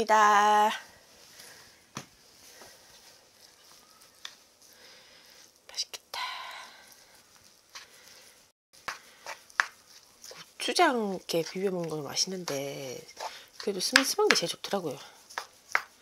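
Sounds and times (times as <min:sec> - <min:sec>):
wooden spoon scraping bowl: 0:09.2 - 0:16.0.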